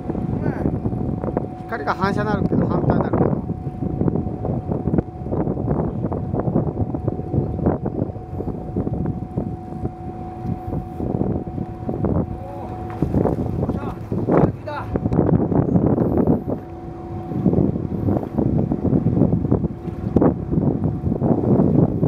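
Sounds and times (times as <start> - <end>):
boat engine running: 0.0 - 22.0
low engine tone: 0.0 - 22.0
wind on microphone: 0.0 - 22.0.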